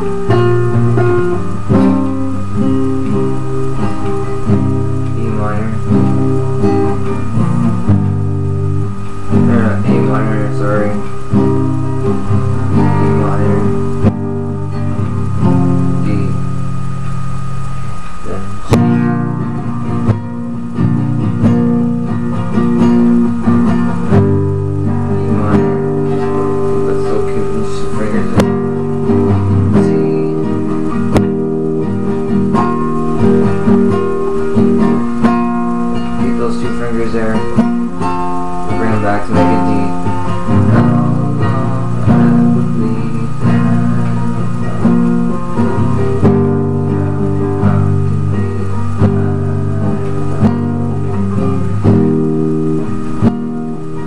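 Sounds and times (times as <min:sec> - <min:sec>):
classical guitar fingerstyle: 0:00.0 - 0:54.0.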